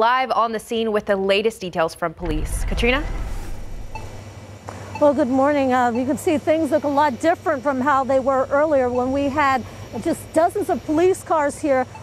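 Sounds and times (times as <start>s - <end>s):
low rumble with swoosh: 2.2s - 4.3s.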